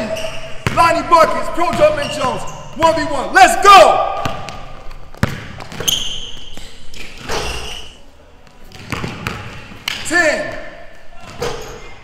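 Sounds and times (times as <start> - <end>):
shoes squealing on wood: 0.0 - 0.6, 1.8 - 2.9, 5.7 - 8.0
basketball bouncing on hardwood: 4.2 - 6.0.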